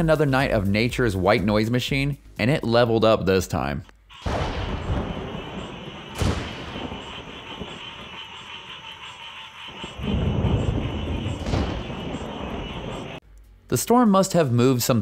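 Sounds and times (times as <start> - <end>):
rain falling: 4.1 - 13.2
low rolling thunder: 4.2 - 13.2
sharp thunder crack: 4.2 - 13.2.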